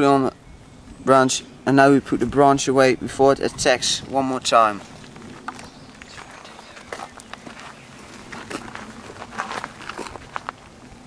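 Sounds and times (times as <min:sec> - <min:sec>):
footsteps: 0:04.5 - 0:11.0
rustling crackles: 0:04.5 - 0:11.0.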